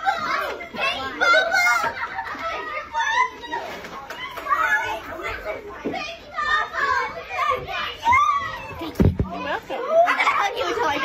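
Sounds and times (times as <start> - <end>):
children chattering excitedly: 0.0 - 11.0.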